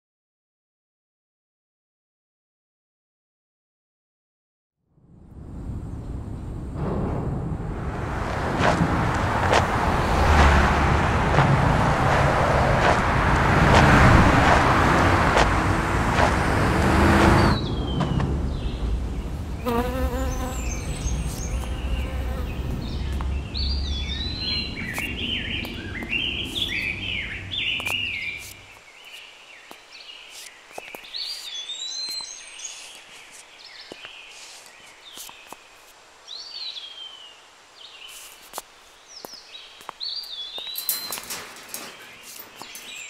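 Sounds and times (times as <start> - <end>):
low rumble: 4.9 - 19.6
loud rushing noise: 5.2 - 19.2
birds chirping: 8.6 - 43.0.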